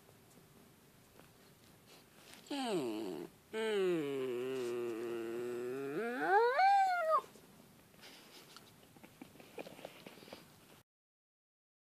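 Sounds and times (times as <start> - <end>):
puppy howling: 2.5 - 7.3.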